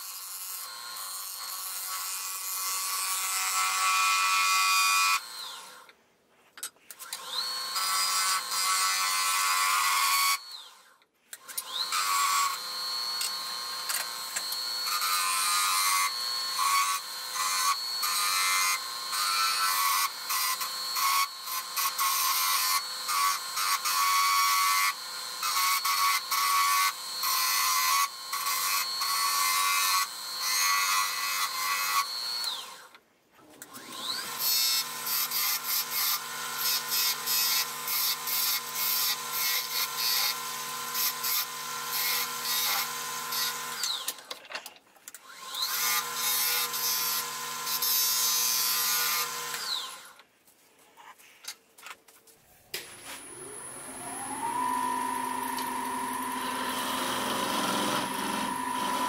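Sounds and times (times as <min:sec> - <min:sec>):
wood lathe whine: 0:11.6 - 0:33.0, 0:33.7 - 0:44.2, 0:45.3 - 0:50.2, 0:53.0 - 0:59.0.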